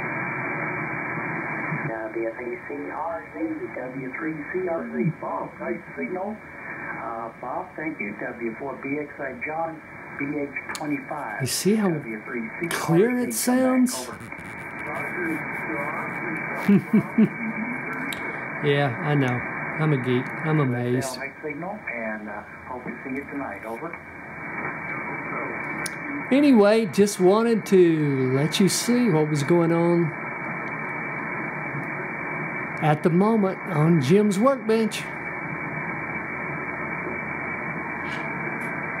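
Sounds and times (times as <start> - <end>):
radio band hiss: 0.0 - 39.0
person talking over radio: 1.6 - 24.0.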